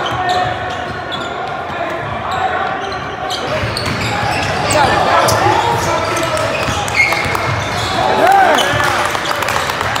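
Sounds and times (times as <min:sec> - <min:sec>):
sneakers squeaking on court: 0:00.0 - 0:09.9
voices echoing in hall: 0:00.0 - 0:10.0.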